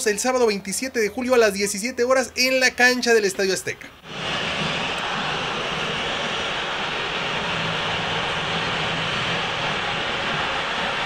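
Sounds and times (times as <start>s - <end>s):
stadium crowd roaring: 4.0s - 11.0s.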